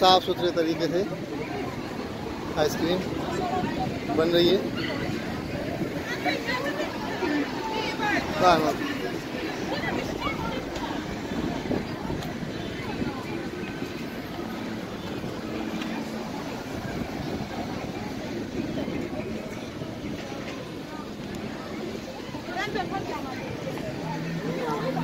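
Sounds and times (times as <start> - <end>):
road traffic: 0.0 - 25.0.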